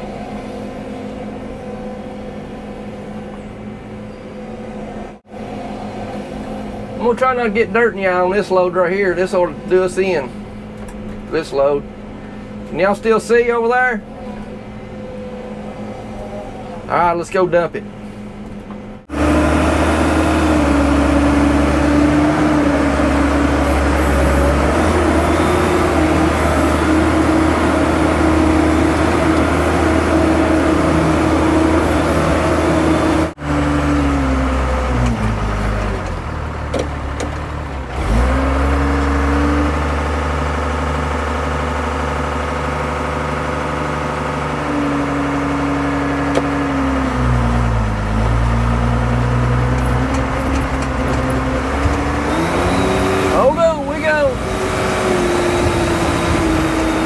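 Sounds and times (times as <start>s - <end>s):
dump truck diesel engine: 0.0s - 57.0s.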